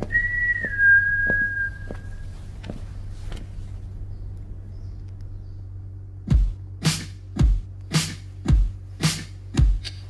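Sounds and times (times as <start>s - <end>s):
person whistling: 0.0s - 2.2s.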